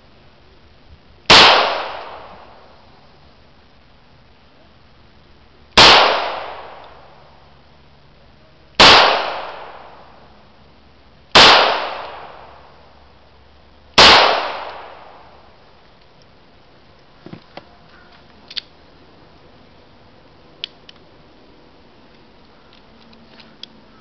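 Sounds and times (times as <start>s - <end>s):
pistol shots with echo: 1.3s - 2.5s, 5.8s - 7.0s, 8.8s - 10.1s, 11.4s - 12.7s, 14.0s - 15.4s.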